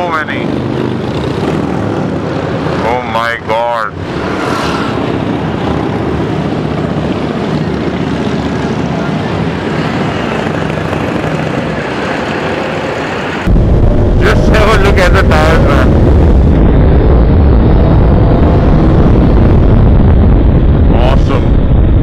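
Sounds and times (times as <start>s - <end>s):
wind and road noise: 0.0s - 22.0s.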